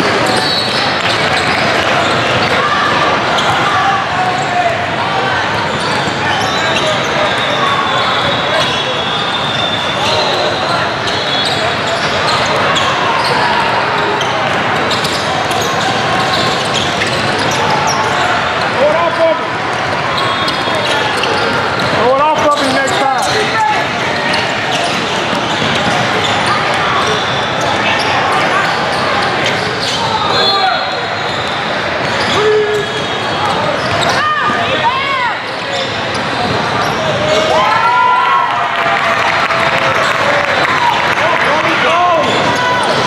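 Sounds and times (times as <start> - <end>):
sneaker squeaks: 0.0 - 4.7, 5.3 - 37.5
din of many voices: 0.0 - 43.0.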